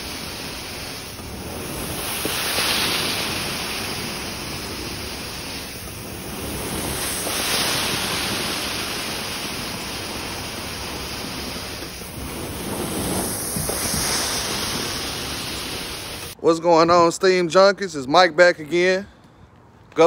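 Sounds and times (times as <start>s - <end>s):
carpet cleaner suction hiss: 0.0s - 16.4s.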